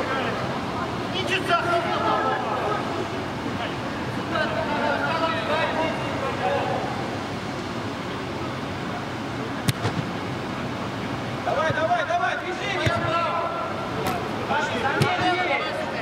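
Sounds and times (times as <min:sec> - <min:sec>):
ball being kicked: 0:09.6 - 0:10.1, 0:12.8 - 0:13.1, 0:14.0 - 0:14.3.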